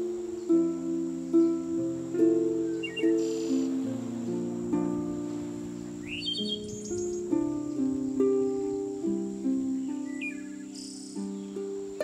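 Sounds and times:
bird chirp: 0.0 - 12.0
harp music: 0.0 - 12.0.

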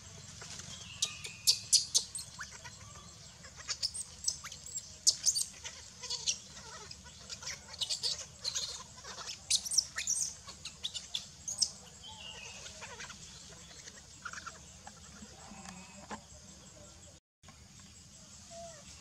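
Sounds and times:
baby monkey squealing: 1.0 - 11.8, 12.4 - 15.0.

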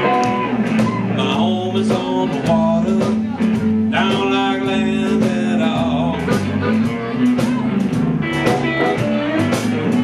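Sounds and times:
electric blues band playing: 0.0 - 10.0.

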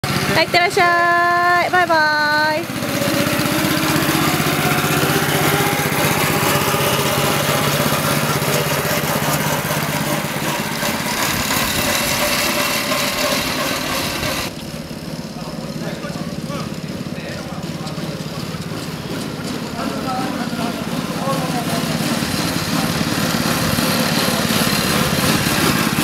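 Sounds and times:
go-kart engine running: 0.0 - 26.0.

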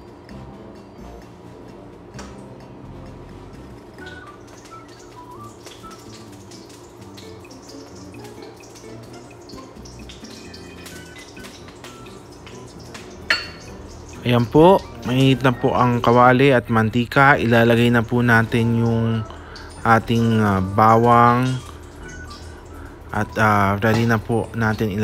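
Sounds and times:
soft background music: 0.0 - 25.0
oil crackling in a wok: 3.6 - 16.5, 17.1 - 25.0.

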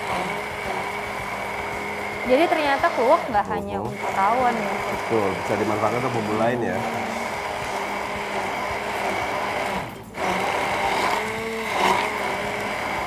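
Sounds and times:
stick blender running: 0.0 - 13.0.

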